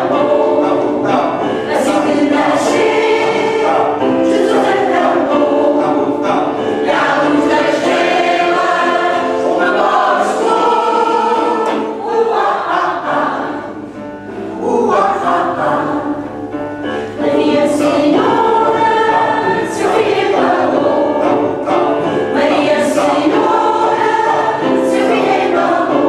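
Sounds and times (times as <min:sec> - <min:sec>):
choir singing: 0:00.0 - 0:26.0.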